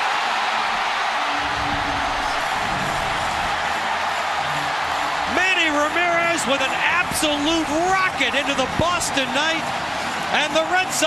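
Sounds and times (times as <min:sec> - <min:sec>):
stadium crowd cheering: 0:00.0 - 0:11.0.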